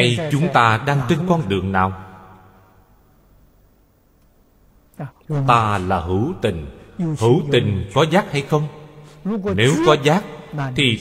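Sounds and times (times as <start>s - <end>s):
man narrating: 0.0s - 2.0s, 5.3s - 11.0s
faint low background hum: 0.0s - 11.0s.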